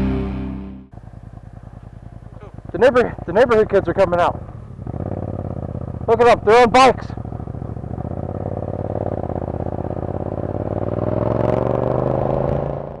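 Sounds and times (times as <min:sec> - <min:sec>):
motorcycle engine revving: 0:00.0 - 0:13.0.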